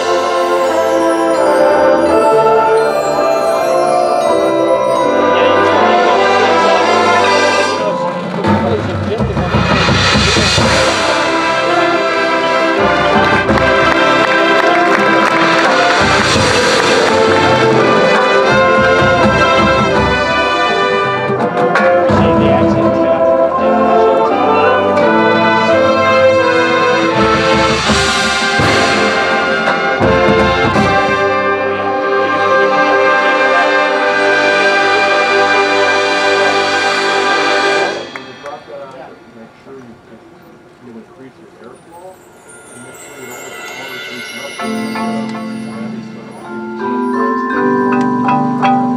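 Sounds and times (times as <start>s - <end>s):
marimbas: 0.0s - 40.7s, 41.5s - 48.9s
brass sustained chords: 0.0s - 47.8s
drums: 6.2s - 33.4s.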